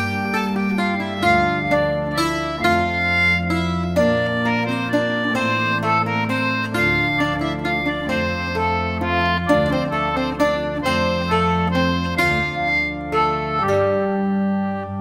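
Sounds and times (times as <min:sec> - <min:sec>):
concertina melody: 0:00.0 - 0:15.0
octave mandolin plucking: 0:00.0 - 0:15.0
organ holding low notes: 0:00.0 - 0:15.0.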